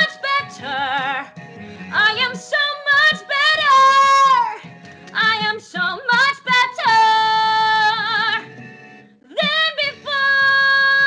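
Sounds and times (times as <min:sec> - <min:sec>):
woman singing belted notes: 0:00.0 - 0:08.5, 0:09.3 - 0:11.0.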